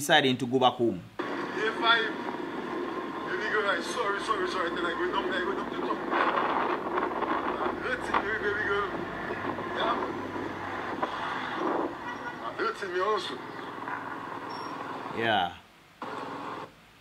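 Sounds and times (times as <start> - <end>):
man talking into a phone: 0.0 - 2.3, 3.2 - 6.3, 7.6 - 10.1, 12.1 - 13.5
background noise: 0.0 - 17.0.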